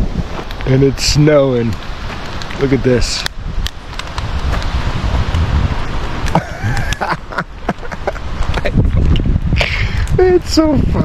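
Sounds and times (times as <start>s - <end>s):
wet snow ticking on microphone: 0.0s - 11.0s
wind buffeting microphone: 0.0s - 11.0s.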